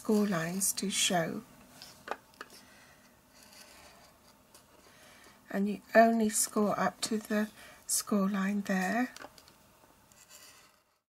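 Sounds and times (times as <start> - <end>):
stylus scratching on cardstock: 10.1 - 11.0.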